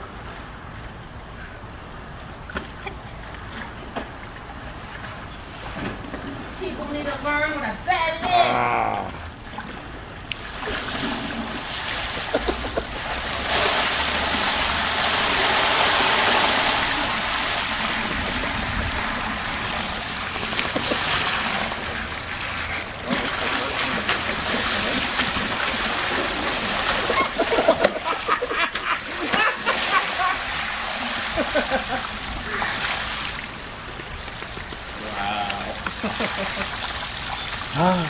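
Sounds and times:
water rushing and splashing: 8.6s - 38.0s.

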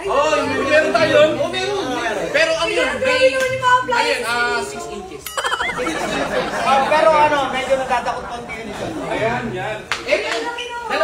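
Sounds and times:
people talking: 5.3s - 7.6s.

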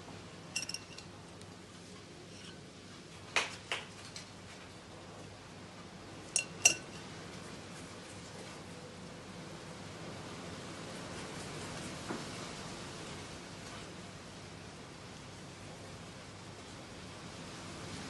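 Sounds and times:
metal spoon clinking on glass bowl: 0.6s - 1.1s, 6.4s - 7.1s.

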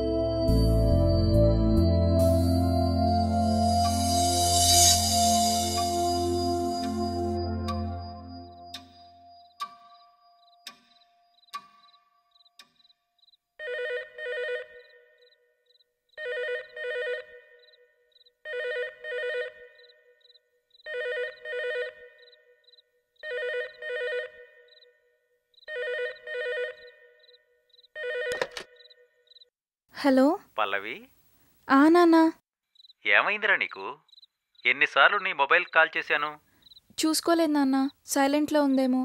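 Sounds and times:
landline telephone ringing: 25.7s - 27.0s, 28.0s - 28.9s.

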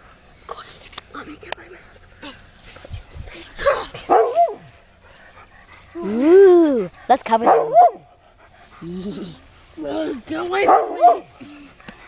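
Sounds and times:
dog barking: 4.1s - 4.7s, 7.4s - 8.1s, 10.6s - 11.3s.

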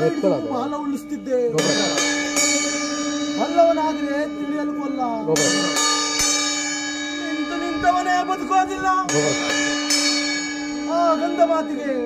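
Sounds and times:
metal gong struck and ringing: 1.5s - 11.7s.

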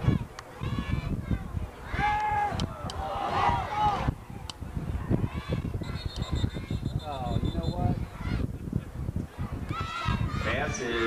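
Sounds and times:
spectators calling out: 4.8s - 8.5s
referee's whistle blast: 5.8s - 8.0s.

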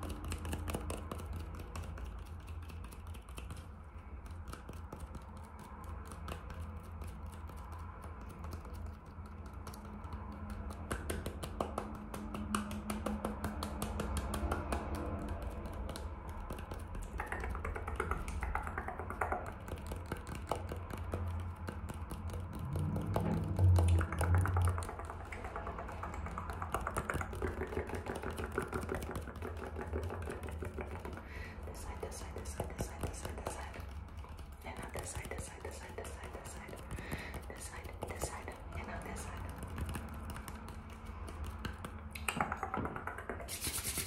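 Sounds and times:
fingernails tapping on apple skin: 0.0s - 44.0s.

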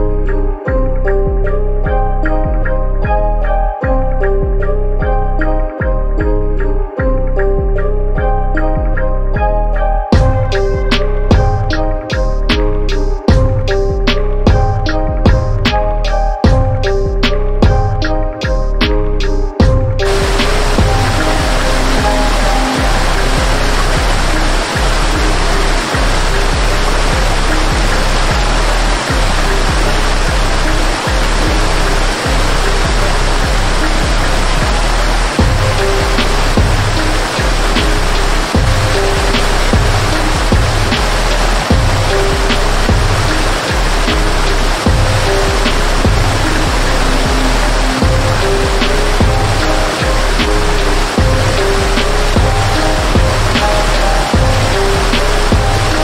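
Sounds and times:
soft music of held notes: 0.0s - 56.0s
waterfall rushing over rocks: 19.6s - 56.0s.

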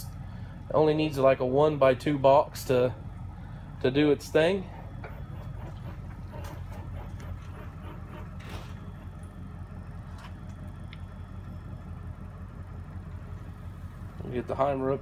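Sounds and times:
milling machine electrical hum: 0.0s - 15.0s.

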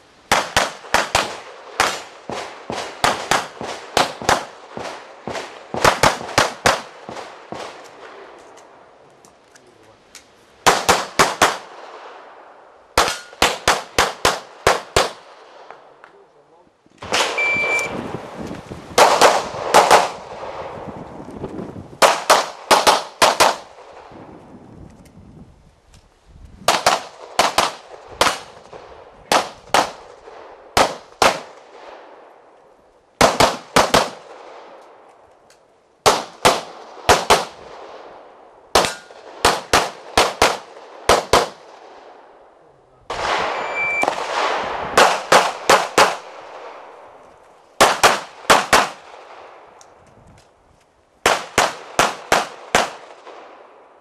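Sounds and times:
pistol shots echoing: 0.3s - 8.8s, 10.6s - 12.3s, 13.0s - 15.9s, 17.0s - 17.8s, 19.0s - 20.6s, 22.0s - 24.0s, 26.7s - 32.3s, 33.2s - 35.0s, 36.0s - 38.1s, 38.7s - 42.4s, 43.1s - 47.1s, 47.8s - 49.6s, 51.2s - 53.8s.

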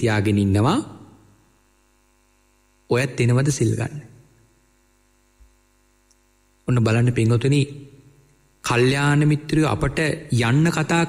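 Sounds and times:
faint mains hum: 0.0s - 11.0s.

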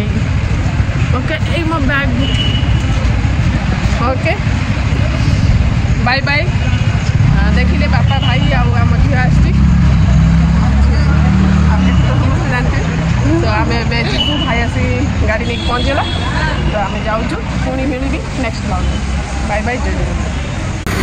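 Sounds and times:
rumble of vehicles: 0.0s - 21.0s
woman talking: 4.0s - 4.5s, 10.8s - 20.1s.

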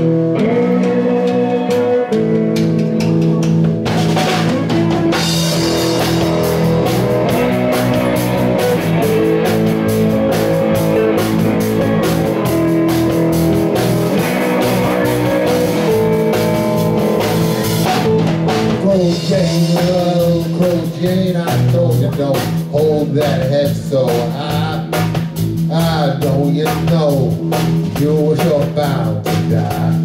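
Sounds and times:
bass guitar: 0.0s - 30.0s
drum kit and cymbals: 0.0s - 30.0s
electric guitars: 0.0s - 30.0s.

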